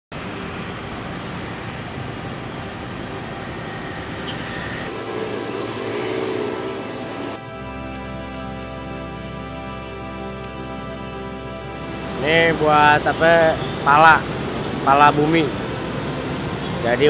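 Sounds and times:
city street traffic: 0:00.1 - 0:07.4, 0:10.6 - 0:17.0
wavering tone: 0:02.4 - 0:07.5
soft music with sustained notes: 0:02.5 - 0:17.0.

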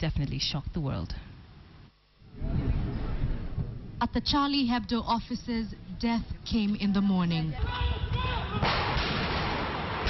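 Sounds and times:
gunshots: 0:08.5 - 0:10.0.

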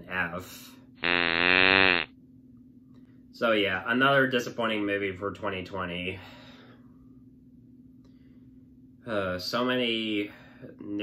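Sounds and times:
low buzzer: 0:01.0 - 0:02.1.

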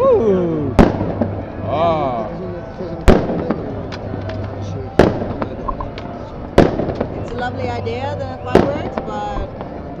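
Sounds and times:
firework bang with echo: 0:00.7 - 0:01.8, 0:03.0 - 0:07.6, 0:08.4 - 0:09.7.

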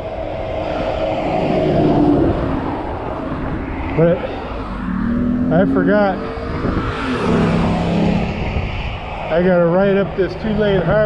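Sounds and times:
truck passing: 0:00.0 - 0:10.9
wind rumble on microphone: 0:00.0 - 0:11.0.

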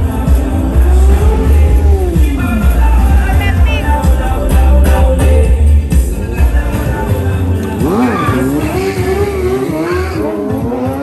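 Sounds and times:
motorcycle engines revving: 0:00.0 - 0:11.0
tyre squeal on pavement: 0:07.8 - 0:10.4.

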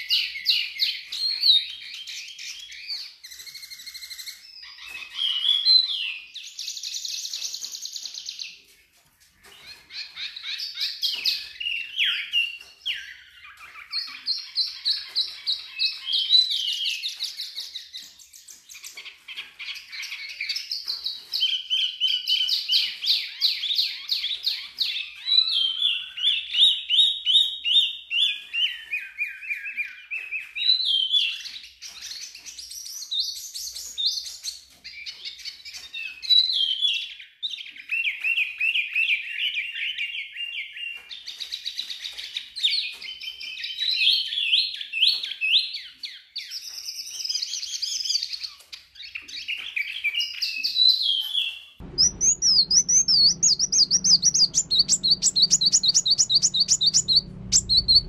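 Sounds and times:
songbird trilling and chirping: 0:51.2 - 0:58.0.

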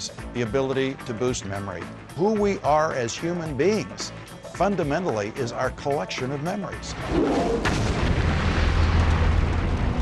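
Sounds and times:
deep rumble of flames: 0:06.9 - 0:10.0
explosion bang: 0:06.9 - 0:10.0.

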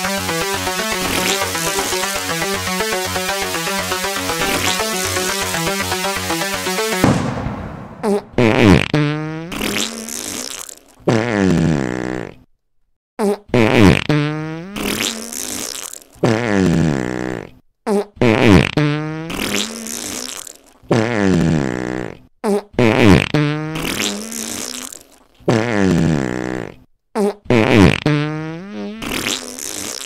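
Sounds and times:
fart sounds: 0:00.0 - 0:07.2, 0:07.9 - 0:12.5, 0:13.2 - 0:30.0.

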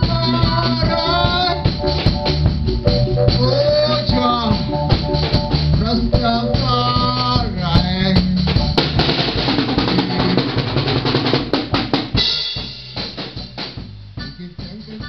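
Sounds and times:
man singing: 0:00.0 - 0:01.9, 0:03.3 - 0:05.0, 0:05.7 - 0:08.7, 0:14.2 - 0:15.0
bass drum and snare: 0:00.0 - 0:15.0
live band music: 0:00.0 - 0:15.0.

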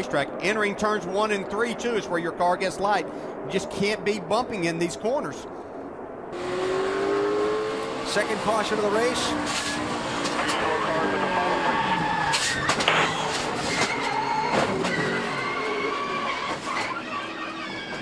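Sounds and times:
race car engine: 0:06.3 - 0:18.0
car sliding: 0:09.2 - 0:18.0.

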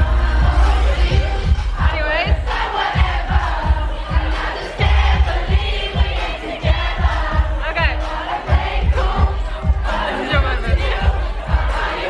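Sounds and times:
crowd singing and shouting: 0:00.0 - 0:12.0
pop dance music with kick drum: 0:00.0 - 0:12.0.

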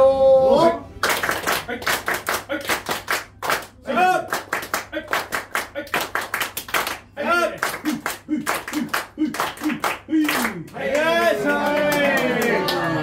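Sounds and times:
group clapping in unison: 0:01.0 - 0:13.0.

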